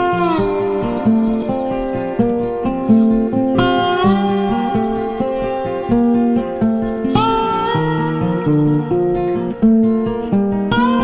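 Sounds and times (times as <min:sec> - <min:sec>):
plucked guitar music: 0:00.0 - 0:11.0.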